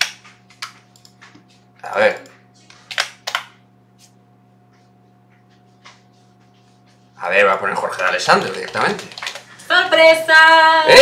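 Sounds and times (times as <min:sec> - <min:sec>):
faint electrical hum: 0:00.0 - 0:11.0
keyboard keys clicking: 0:08.0 - 0:09.4.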